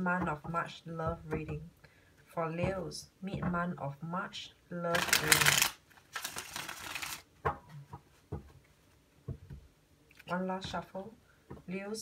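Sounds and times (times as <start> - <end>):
cards being shuffled: 4.9 - 7.3.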